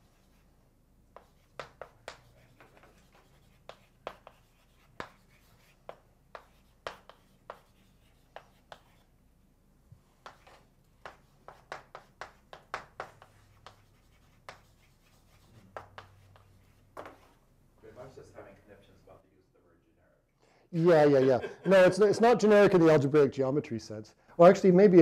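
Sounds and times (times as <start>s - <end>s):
chalk scratching on blackboard: 0.0s - 9.1s, 10.1s - 17.4s.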